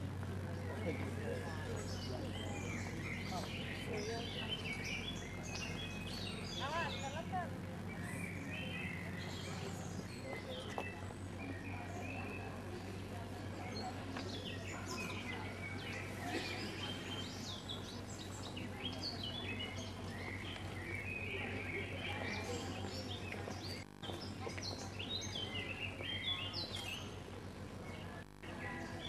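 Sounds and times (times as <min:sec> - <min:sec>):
steady low hum: 0:00.0 - 0:29.0
small birds chirping: 0:00.2 - 0:29.0.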